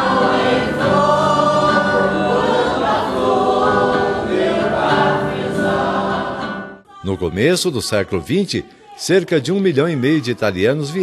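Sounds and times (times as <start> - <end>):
choir singing in harmony: 0.0 - 7.5.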